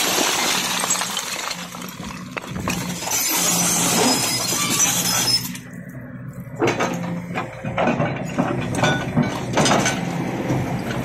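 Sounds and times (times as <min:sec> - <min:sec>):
rubble clattering onto pile: 0:00.0 - 0:03.0
excavator engine running: 0:01.6 - 0:11.0.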